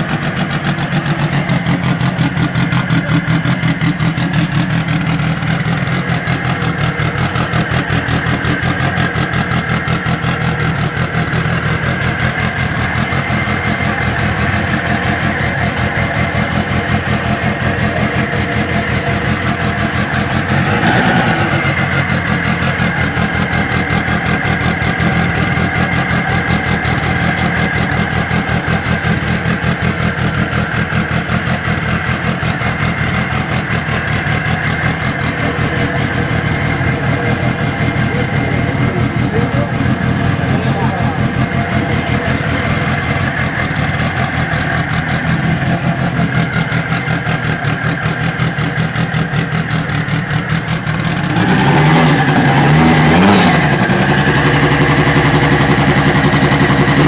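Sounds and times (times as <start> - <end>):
race car engine idling: 0.0 - 57.0.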